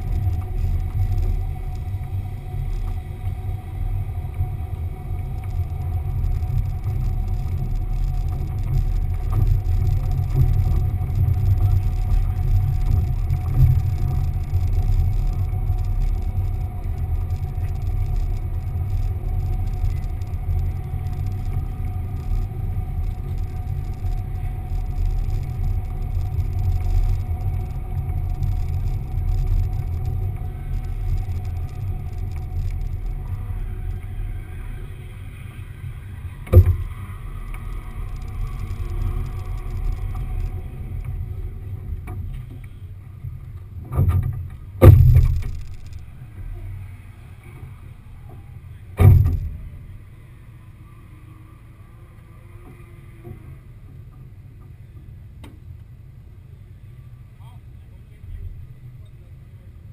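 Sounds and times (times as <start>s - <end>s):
car engine and road rumble: 0.0s - 59.9s
faint steady hum: 0.0s - 59.9s.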